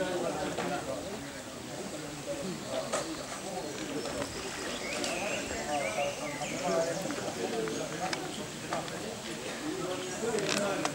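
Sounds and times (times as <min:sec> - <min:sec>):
people talking in background: 0:00.0 - 0:10.9.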